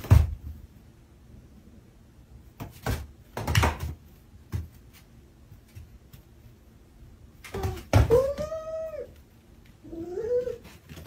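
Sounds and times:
cat yowling: 0:07.6 - 0:09.2.

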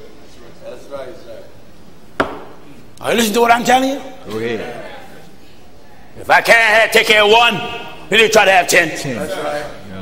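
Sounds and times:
sharp knock: 0:02.2 - 0:02.6.

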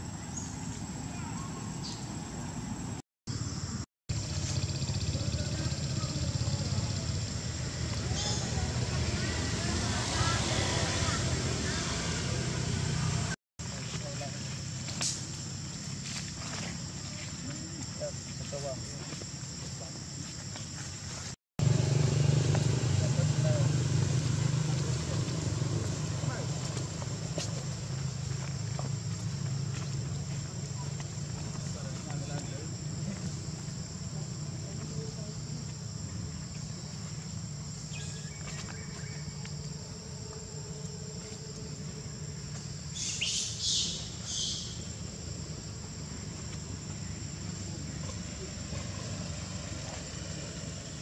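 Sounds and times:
short shrill insect calls: 0:00.1 - 0:08.8, 0:36.2 - 0:49.1.

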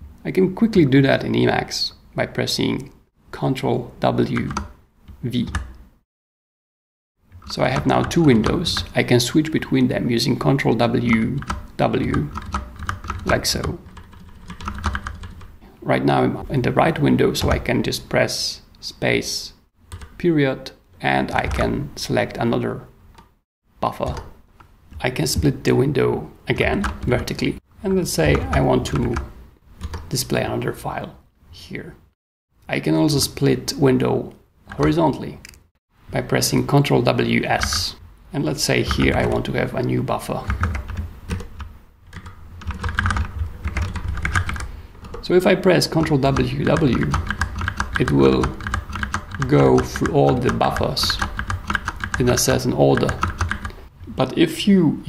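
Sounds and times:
keyboard keys tapping: 0:11.2 - 0:15.5, 0:28.1 - 0:30.1, 0:40.5 - 0:45.2, 0:45.9 - 0:53.8
keyboard typing clicks: 0:46.7 - 0:52.2.

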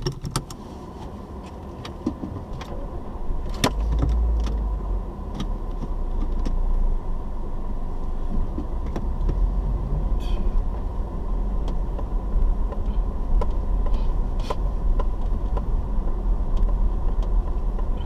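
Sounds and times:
car engine and road rumble: 0:00.0 - 0:18.0.

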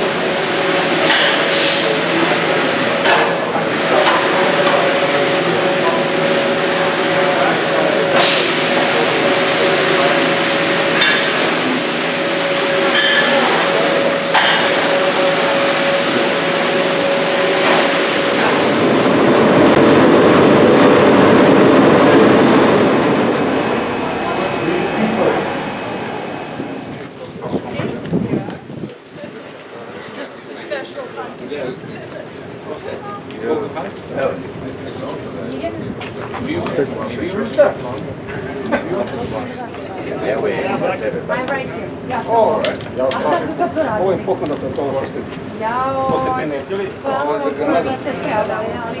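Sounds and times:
machinery humming: 0:00.0 - 0:28.2.

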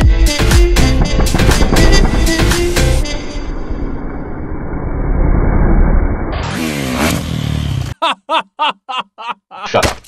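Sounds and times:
low rumble: 0:00.8 - 0:06.4
dirt bike engine revving: 0:06.3 - 0:08.0.

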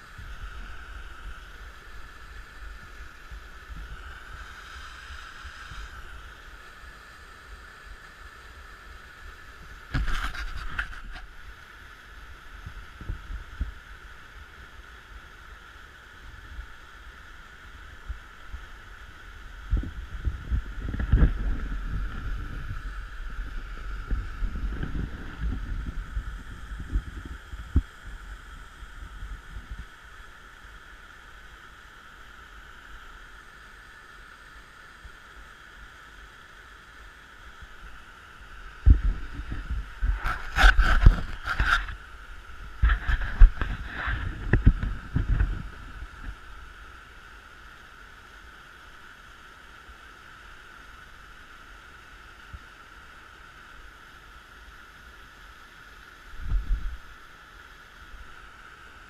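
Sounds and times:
wind buffeting microphone: 0:19.6 - 0:28.2, 0:42.6 - 0:46.1.

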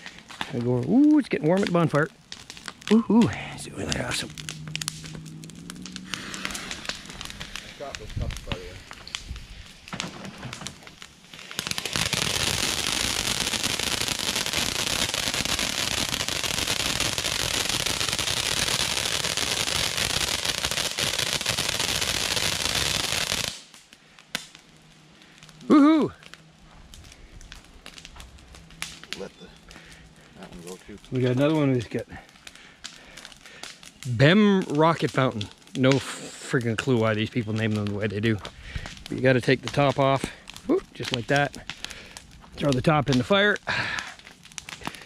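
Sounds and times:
scattered crackling: 0:00.0 - 0:45.0
firework fountain hissing: 0:02.9 - 0:23.7.

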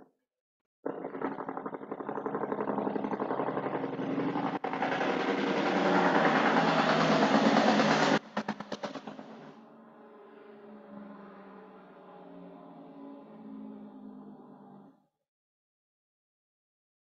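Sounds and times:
machine motor pulsing: 0:00.9 - 0:09.6.

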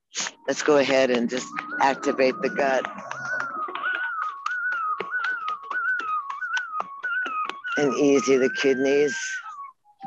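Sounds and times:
wavering whistle-like tone: 0:00.2 - 0:10.0.

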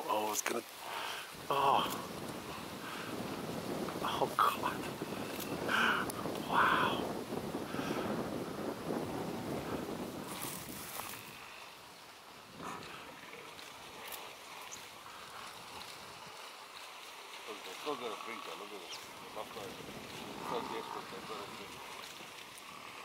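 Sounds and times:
wind rumbling on microphone: 0:00.8 - 0:23.0.

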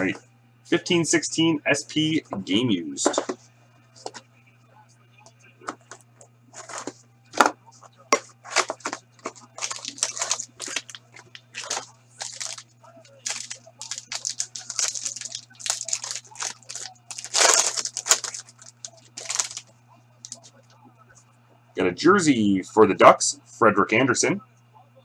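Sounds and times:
foil pack tearing and crinkling: 0:08.5 - 0:19.6.

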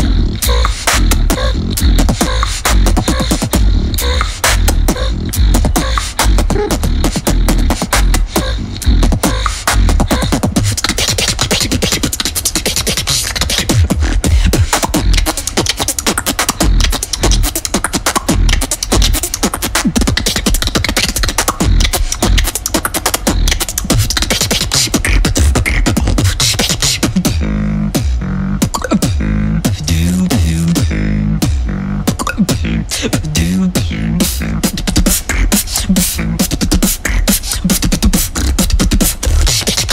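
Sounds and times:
beatboxing into microphone: 0:00.0 - 0:39.9.

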